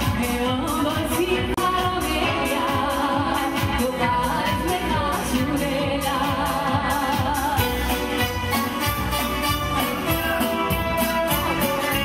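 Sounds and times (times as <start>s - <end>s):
woman singing into microphone: 0.0s - 8.8s
keyboard: 0.0s - 12.0s
steady beat: 6.2s - 12.0s
electric guitar: 7.4s - 12.0s.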